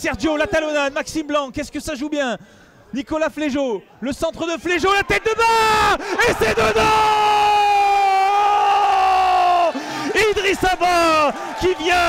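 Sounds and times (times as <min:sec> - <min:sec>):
commentator shouting: 0:04.4 - 0:12.0.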